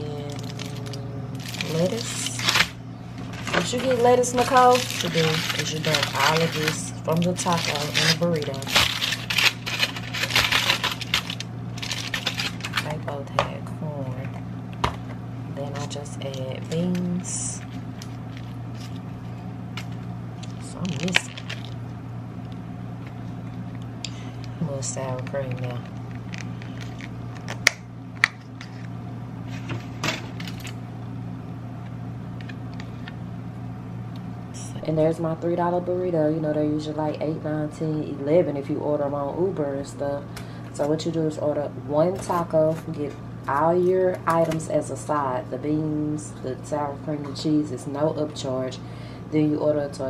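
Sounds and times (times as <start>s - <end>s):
steady low hum: 0.0s - 50.0s
aluminium foil crinkling: 0.1s - 13.1s, 15.7s - 21.9s, 24.4s - 27.7s.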